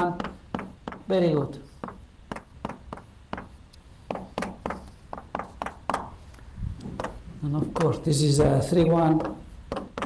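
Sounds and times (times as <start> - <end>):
chalk tapping on blackboard: 0.0 - 10.0.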